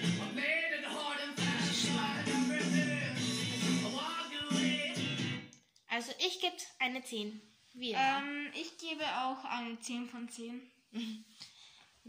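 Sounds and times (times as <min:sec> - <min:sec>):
song with guitar from television: 0:00.0 - 0:05.7
girl speaking: 0:05.9 - 0:11.1.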